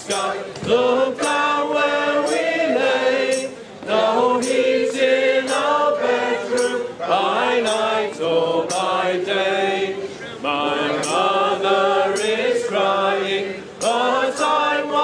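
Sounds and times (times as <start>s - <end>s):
group singing a carol unaccompanied: 0.0s - 15.0s.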